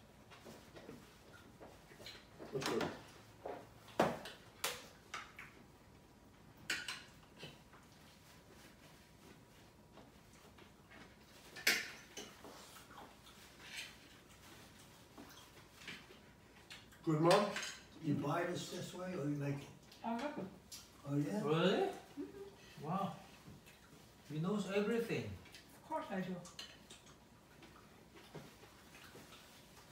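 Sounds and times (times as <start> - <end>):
cutlery and plates clinking: 6.6 - 7.6, 11.4 - 12.4, 16.7 - 17.9.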